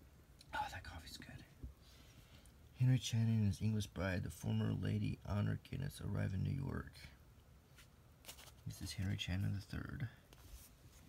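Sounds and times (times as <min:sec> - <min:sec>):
man whispering: 0:00.4 - 0:01.6, 0:02.7 - 0:07.2, 0:08.6 - 0:10.3.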